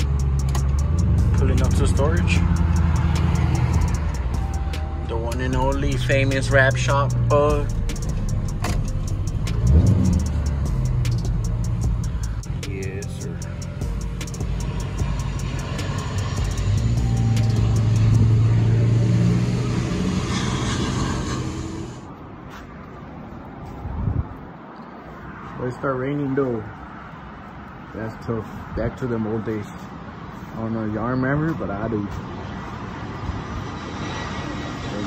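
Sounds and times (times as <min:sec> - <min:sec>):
music from car stereo: 0:00.0 - 0:19.5
car engine running low: 0:00.0 - 0:22.1.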